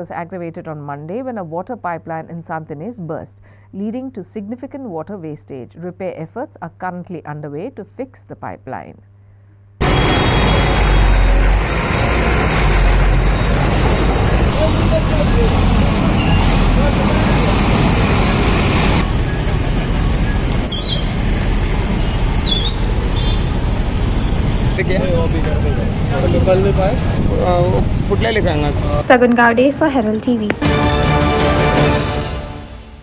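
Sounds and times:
steady rumbling engine noise: 9.8s - 30.7s
short high chirps: 20.3s - 21.3s
men's voices: 24.8s - 29.0s.

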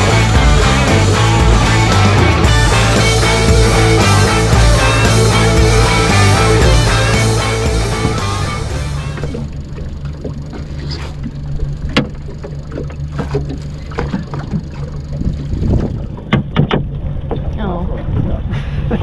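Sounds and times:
music: 0.0s - 9.3s
boat motor idling: 0.0s - 19.0s
knocks and clatter on metal boat: 9.1s - 18.5s.

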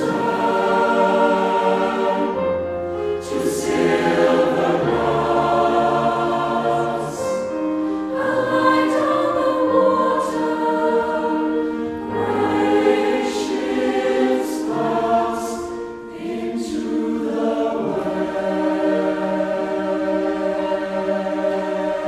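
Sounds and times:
mixed choir singing chords: 0.0s - 22.0s.

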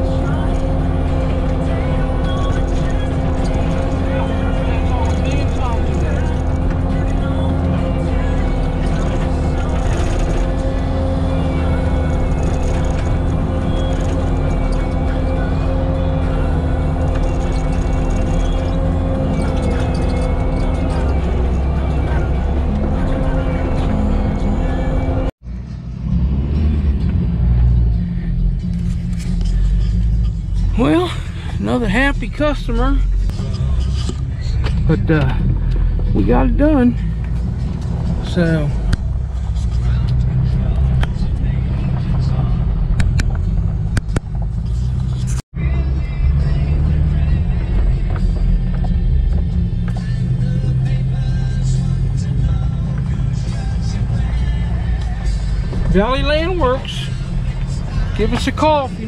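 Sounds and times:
diesel engine droning under load: 0.0s - 59.0s
uneven rumbling: 0.0s - 59.0s.

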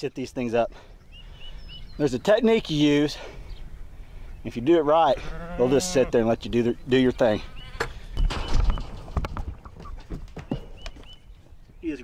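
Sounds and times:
knocks and scuffles in a pen: 7.8s - 12.0s.

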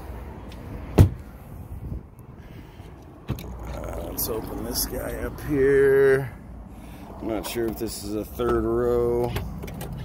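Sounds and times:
car door shutting thump: 1.0s - 1.2s.

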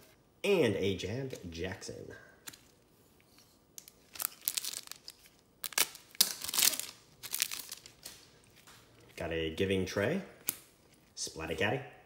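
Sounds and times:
wrapper tearing and crinkling: 3.8s - 8.8s.

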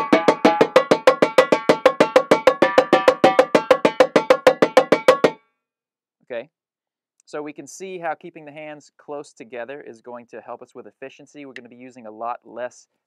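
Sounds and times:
marching tenor drums: 0.0s - 5.4s.

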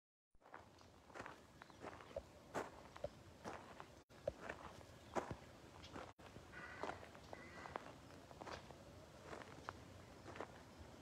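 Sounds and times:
footsteps on sandy pebbly shore: 0.4s - 10.7s.

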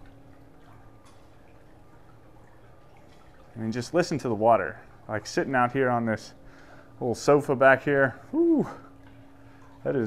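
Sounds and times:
light dripping ticks: 0.0s - 10.0s
low steady hum: 0.0s - 10.0s
water trickling: 0.0s - 10.0s.

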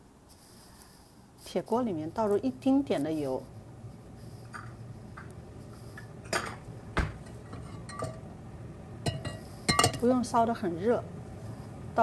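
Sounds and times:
wok and kitchenware clinking: 7.2s - 8.3s, 9.0s - 10.1s.

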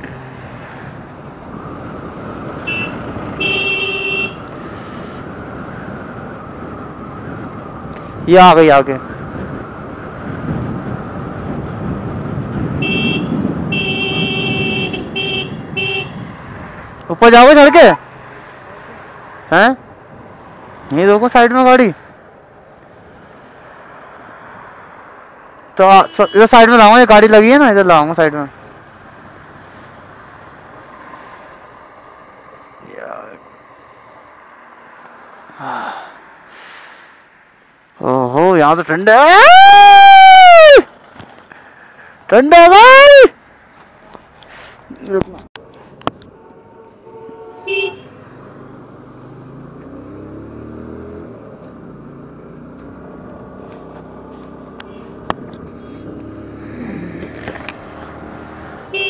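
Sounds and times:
motorcycle running on road: 0.0s - 25.5s, 47.7s - 59.0s
vehicle horn honking: 2.6s - 4.4s, 12.8s - 16.2s, 46.4s - 48.2s
breathy hiss: 35.8s - 37.4s
riders' short vocal sounds: 55.8s - 57.8s.

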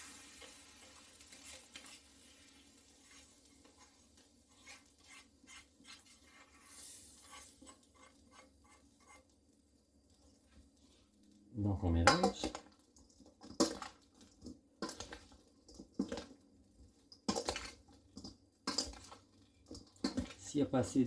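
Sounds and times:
spatula scraping a pan: 0.0s - 9.4s, 17.2s - 20.4s
hot oil sizzling: 0.0s - 21.0s.

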